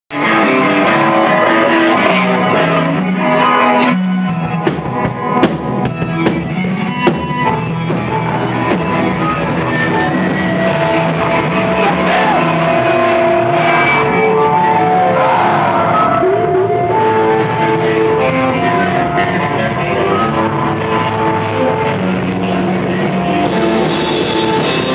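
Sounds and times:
rock band playing: 0:00.1 - 0:24.9.

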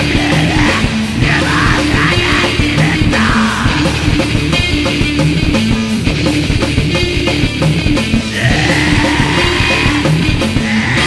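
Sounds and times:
harsh yelled vocals: 0:00.0 - 0:05.2, 0:08.2 - 0:11.0
distorted electric guitars: 0:00.0 - 0:11.0
drums: 0:00.0 - 0:11.0.

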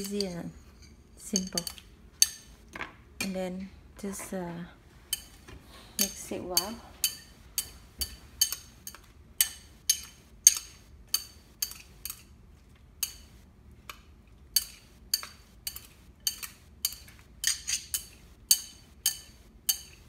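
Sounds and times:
utensil clinking against bowl: 0:00.0 - 0:02.6, 0:05.1 - 0:05.4, 0:06.0 - 0:12.3, 0:13.0 - 0:13.3, 0:14.6 - 0:20.0.

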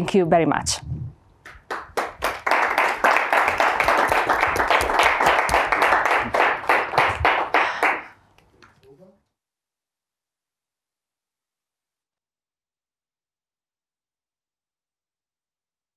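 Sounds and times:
hands clapping: 0:01.4 - 0:08.9.

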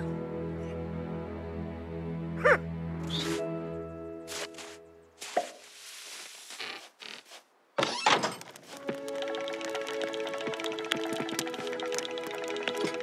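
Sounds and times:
cartoon background music: 0:00.0 - 0:05.0, 0:08.8 - 0:13.0.

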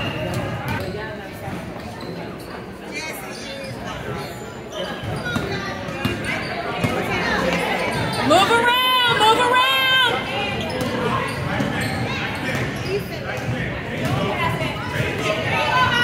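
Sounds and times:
voices in reverberant gym: 0:00.0 - 0:16.0.

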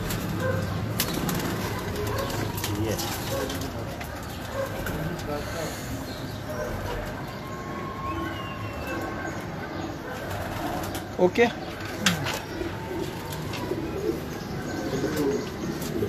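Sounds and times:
pigeons cooing: 0:00.0 - 0:16.0.

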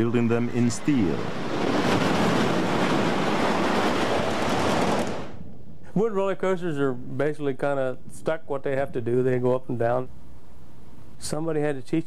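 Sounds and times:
roller coaster wheels roaring on rails: 0:00.0 - 0:05.5.

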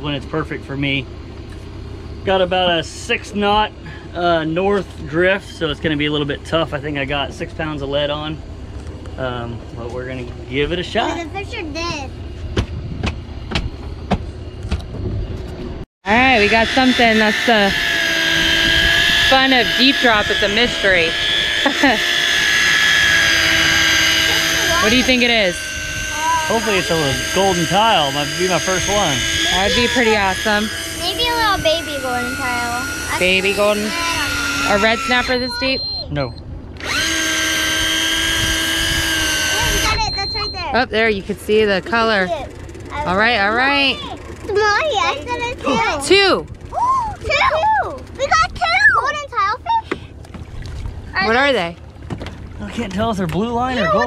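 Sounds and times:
electric reel motor whining: 0:16.1 - 0:48.3
excited voices: 0:42.9 - 0:49.9, 0:53.6 - 0:54.0
water splashing against boat: 0:49.7 - 0:53.7.

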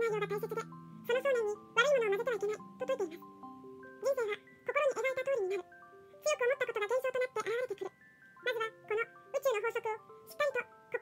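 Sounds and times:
rapid high-pitched sped-up narration: 0:00.0 - 0:03.3, 0:04.0 - 0:11.0
music-box music: 0:00.0 - 0:11.0.

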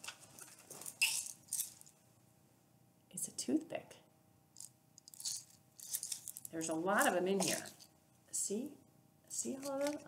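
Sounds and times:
plastic container clicks and rustles: 0:05.1 - 0:07.8.

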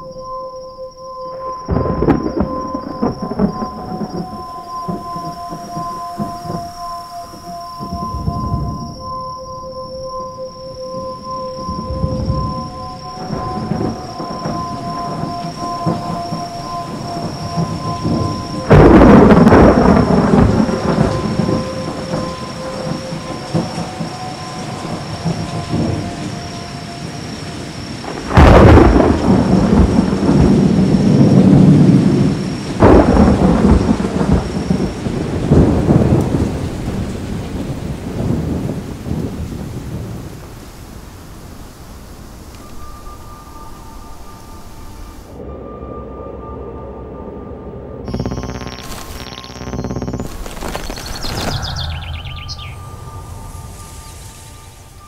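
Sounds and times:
held musical drone: 0:00.0 - 0:28.3
steady rain: 0:01.6 - 0:45.4, 0:48.1 - 0:55.0
loud thunder claps rolling: 0:01.7 - 0:06.6, 0:11.8 - 0:26.4, 0:27.4 - 0:40.6.

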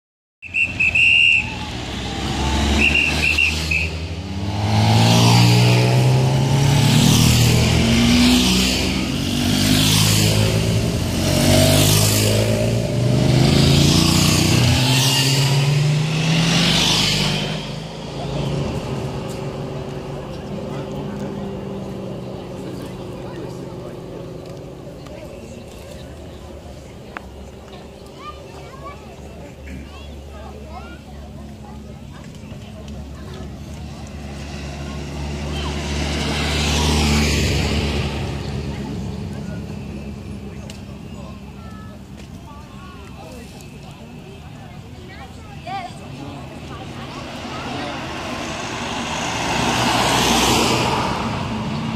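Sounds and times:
motorcycle and vehicle engines passing: 0:00.4 - 0:51.9.

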